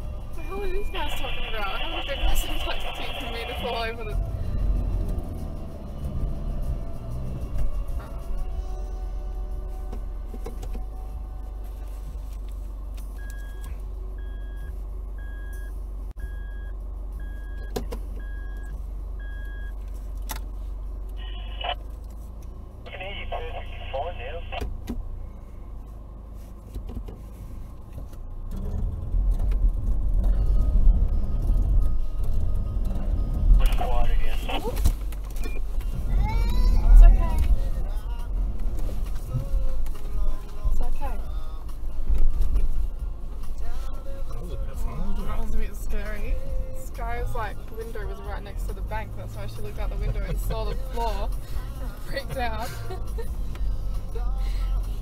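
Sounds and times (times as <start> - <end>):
diesel engine idling and revving: 0.0 - 55.0.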